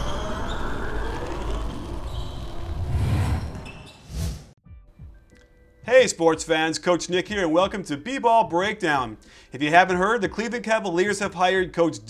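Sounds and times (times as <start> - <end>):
whooshing rumble: 1.0 - 4.6.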